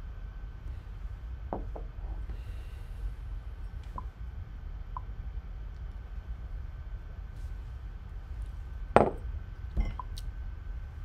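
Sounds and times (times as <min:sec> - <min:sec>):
glass clinking on surface: 0:09.8 - 0:10.1.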